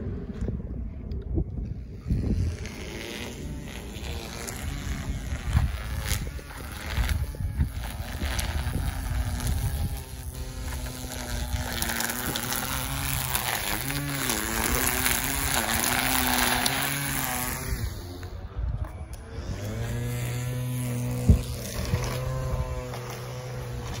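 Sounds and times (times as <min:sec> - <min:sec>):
trimmer line cutting grass: 0:01.7 - 0:24.0
string trimmer engine running: 0:01.8 - 0:24.0.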